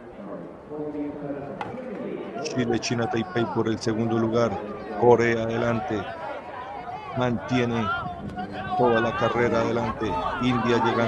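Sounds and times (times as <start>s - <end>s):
venue background noise: 0.0s - 11.0s.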